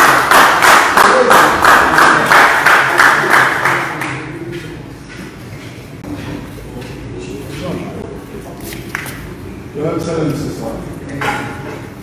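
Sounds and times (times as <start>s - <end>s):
group clapping in time: 0.0s - 4.4s.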